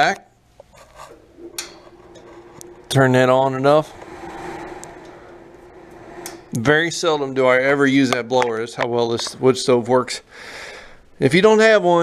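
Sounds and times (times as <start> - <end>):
blower fan humming: 0.6 - 7.9.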